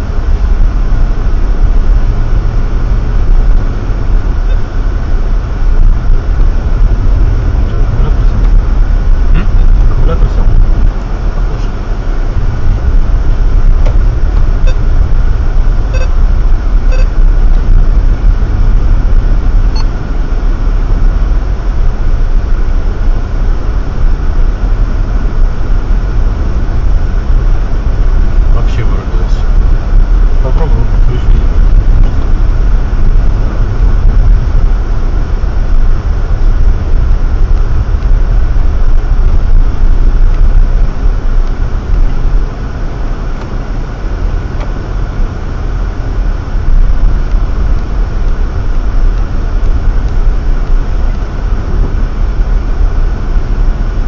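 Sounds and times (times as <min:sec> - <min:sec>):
car road noise rumble: 0:00.0 - 0:54.0.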